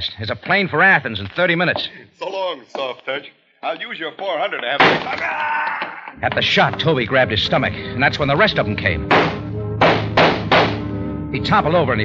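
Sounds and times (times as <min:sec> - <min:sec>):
held music chord: 0:06.2 - 0:12.0
gunshot sound effects: 0:09.1 - 0:10.9.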